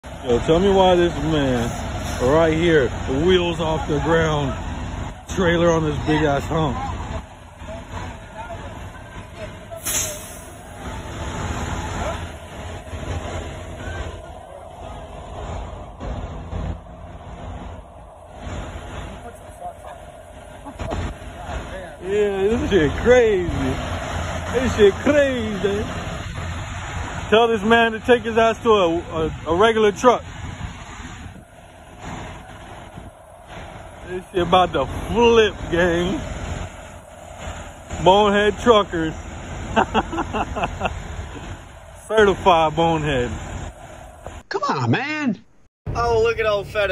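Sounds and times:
indistinct voices: 0.0 - 30.3
diesel truck engine rumbling: 0.0 - 46.9.

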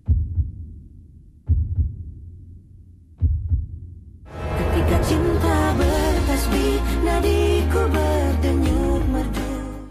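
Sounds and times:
deep heartbeat thuds: 0.0 - 2.4, 3.1 - 4.2.

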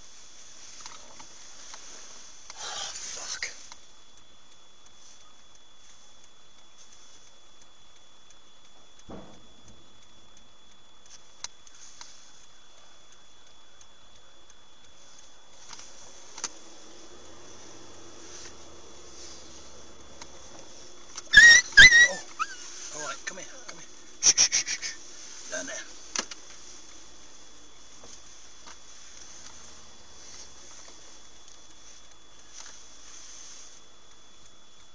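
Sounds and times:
faint background noise: 0.0 - 34.9
high thin whine: 0.0 - 34.9
sharp voice-like cries: 21.3 - 22.7.

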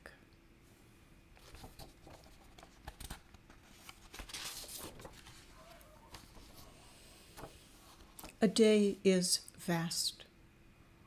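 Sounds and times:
paper pages rustling: 1.4 - 8.4.

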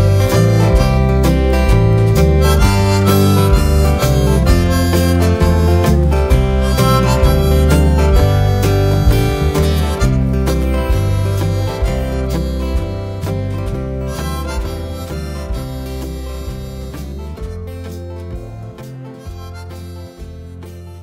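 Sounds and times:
acoustic guitar: 0.0 - 21.0
harmonica playing: 0.0 - 21.0.

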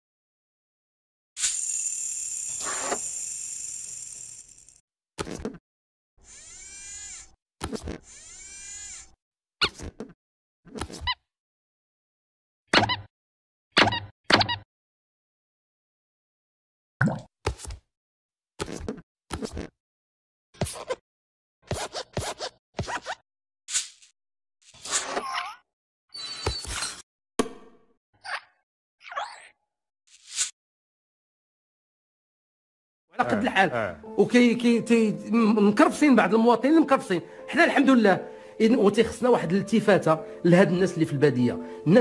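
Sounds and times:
metallic hissing slide: 1.4 - 4.8
whirring motor: 1.4 - 4.8, 6.2 - 7.4, 8.0 - 9.2.

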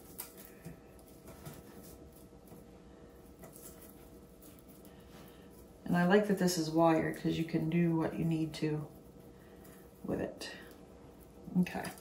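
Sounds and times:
light ticks of garland: 0.0 - 12.0
wired garland rustling: 0.0 - 12.0.

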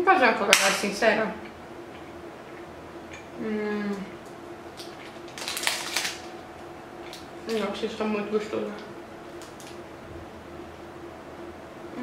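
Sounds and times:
plastic wrapper crinkling: 4.7 - 6.4, 9.3 - 9.8.

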